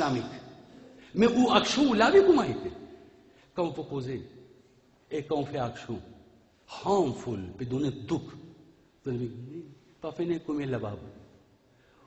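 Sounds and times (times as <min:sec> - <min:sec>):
man speaking into a microphone: 0:00.0 - 0:04.2, 0:05.1 - 0:08.4, 0:09.0 - 0:11.2.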